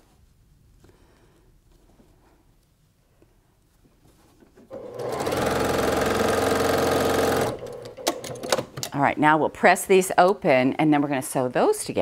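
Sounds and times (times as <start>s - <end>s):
electric sewing machine stitching: 4.7s - 8.6s.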